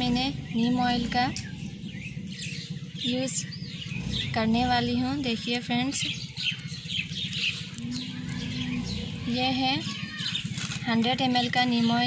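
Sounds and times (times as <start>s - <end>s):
small birds chirping: 0.0s - 12.0s
steady low hum: 0.0s - 12.0s.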